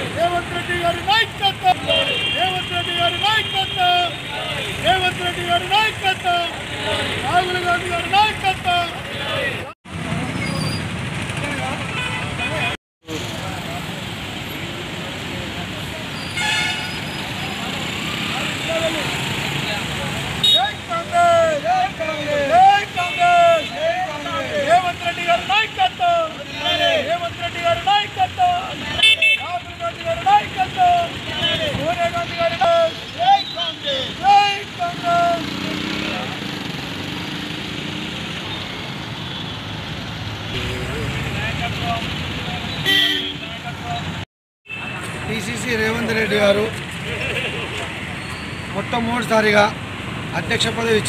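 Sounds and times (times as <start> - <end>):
street traffic: 0.0 - 51.0
vehicle horn tooting: 16.3 - 17.1, 42.8 - 43.6.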